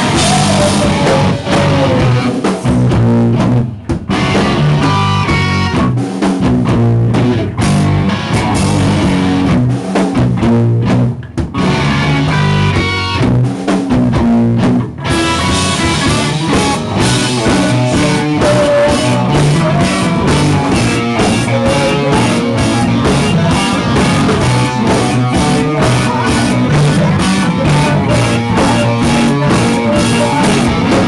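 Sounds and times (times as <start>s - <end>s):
live rock band playing: 0.0s - 31.0s.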